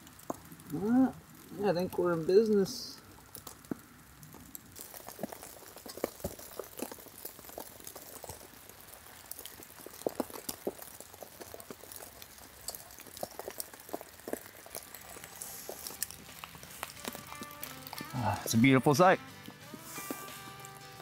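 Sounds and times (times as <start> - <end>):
wood fire crackling and popping: 0.0 - 21.0.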